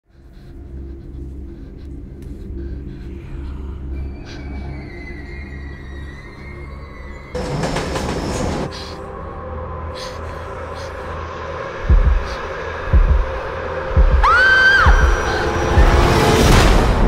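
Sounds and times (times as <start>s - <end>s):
pulsing film score drone: 0.0s - 17.0s
train wheel squeal: 4.2s - 8.9s
train rushing: 7.4s - 9.0s.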